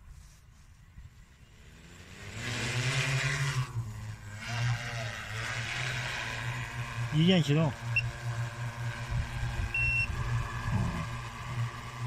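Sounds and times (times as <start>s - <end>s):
drone propellers humming: 1.0s - 12.0s.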